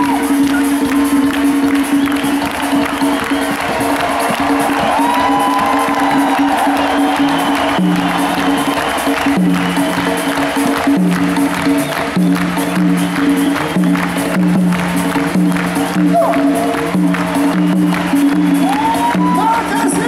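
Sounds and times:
crowd cheering: 0.0s - 20.0s.

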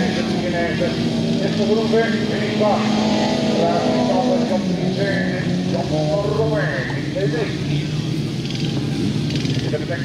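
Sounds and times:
man speaking: 0.0s - 8.2s
race car engines: 0.0s - 10.0s.

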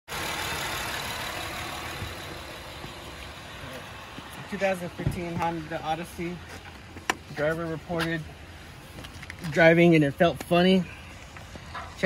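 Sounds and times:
car engine idling: 0.1s - 12.0s.

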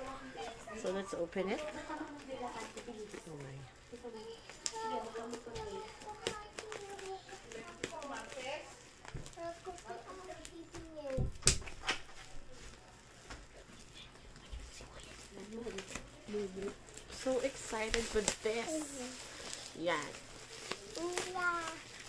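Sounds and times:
parcel clicks and rustles: 0.8s - 22.0s.

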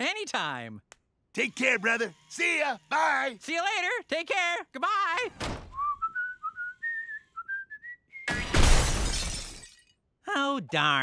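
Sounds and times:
cartoon character whistling: 5.8s - 8.4s
loud crash of breaking: 8.3s - 9.7s.

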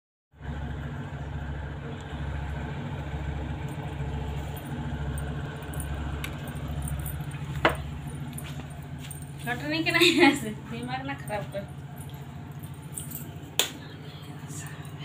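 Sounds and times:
steady low hum: 0.4s - 15.0s.

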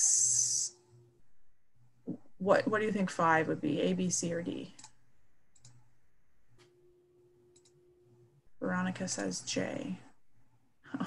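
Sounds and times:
faint clicks: 4.8s - 5.9s, 7.5s - 7.8s.

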